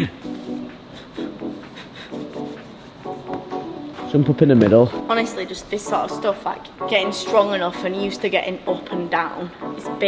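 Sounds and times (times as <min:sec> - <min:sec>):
background music: 0:00.0 - 0:10.0
hands rubbing chalk: 0:00.2 - 0:03.7.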